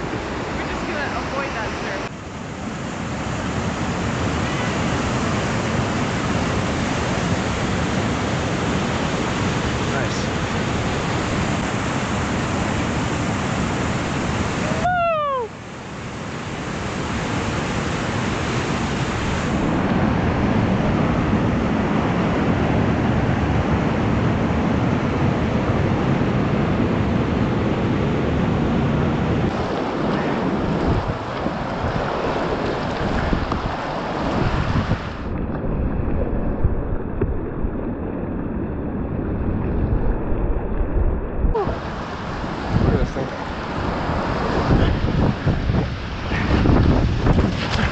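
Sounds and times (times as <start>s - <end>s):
whitewater rapids rushing: 0.0s - 35.3s, 41.6s - 47.9s.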